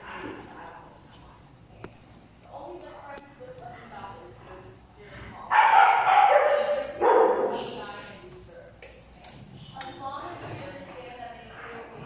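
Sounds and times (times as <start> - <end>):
dog barking: 5.5 - 7.6.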